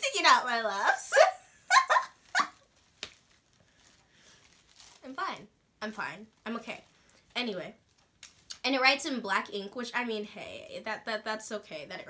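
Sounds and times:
girl laughing: 1.0 - 2.6.

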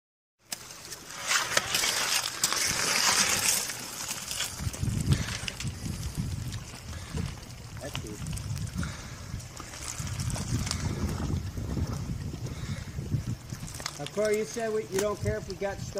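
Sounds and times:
water splashing and sloshing: 0.4 - 15.9.

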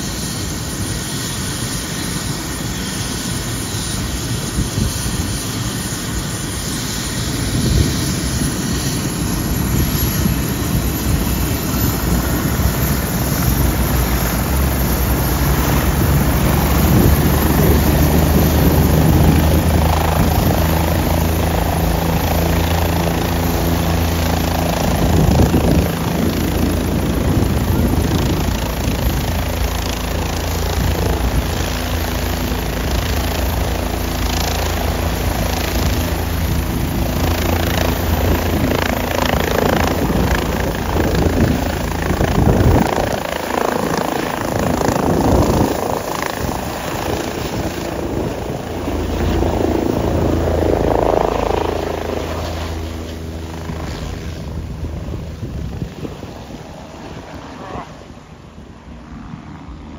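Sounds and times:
helicopter running: 0.0 - 59.9.

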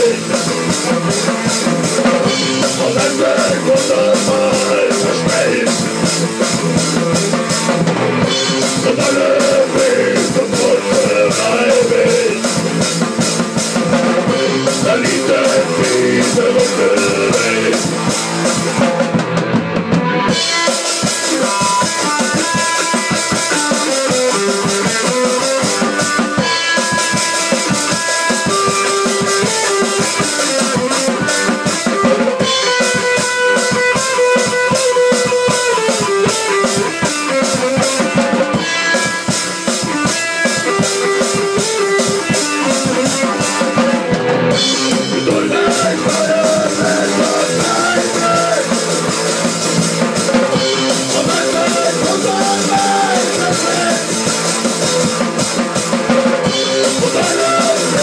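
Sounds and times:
drum kit beat: 0.0 - 58.0
electric guitar: 0.0 - 58.0.

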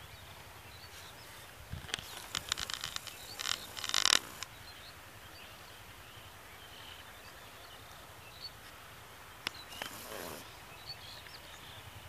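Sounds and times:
bird chirps: 0.0 - 8.6, 9.4 - 12.0
sharp clicks and crackles: 1.8 - 4.5.

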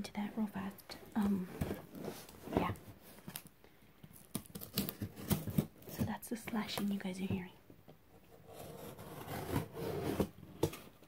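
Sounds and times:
cardboard box being torn open: 4.3 - 5.7.

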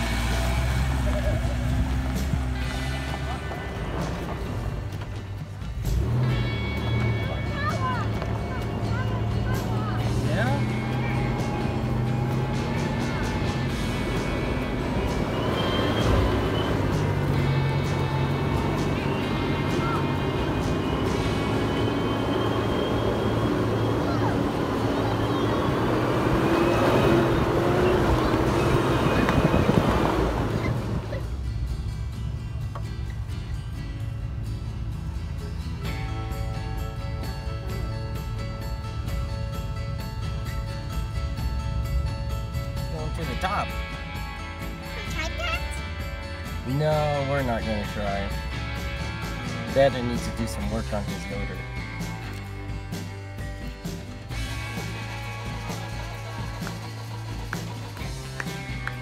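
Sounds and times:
background music: 0.0 - 59.0
car engine revving: 0.0 - 59.0.

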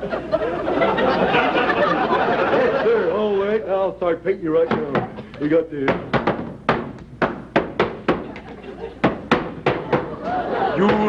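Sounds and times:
audience laughing: 0.0 - 3.4, 8.2 - 9.0, 9.8 - 11.0.

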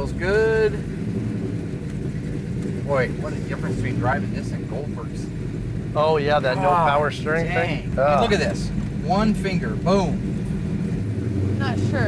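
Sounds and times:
car engine low rumble: 0.0 - 12.0.

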